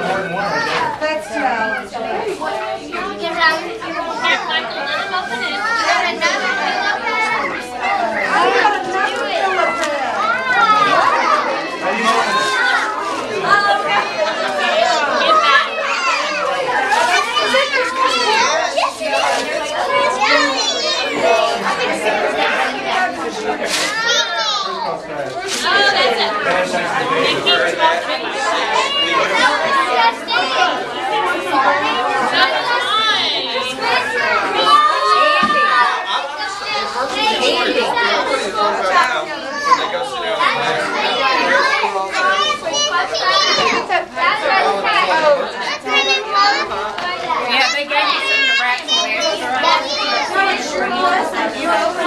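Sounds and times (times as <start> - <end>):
children talking and calling out: 0.0 - 52.0.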